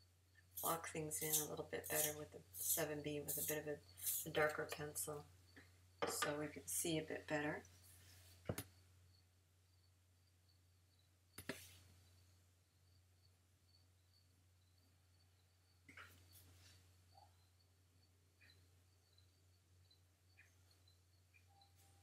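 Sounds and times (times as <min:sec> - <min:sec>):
pencil scratching on paper: 0:00.6 - 0:04.5.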